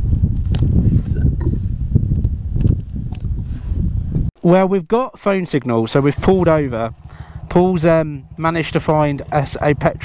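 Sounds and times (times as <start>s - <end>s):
steady low rumble: 2.1s - 4.2s
small metal bell ringing: 2.2s - 3.6s.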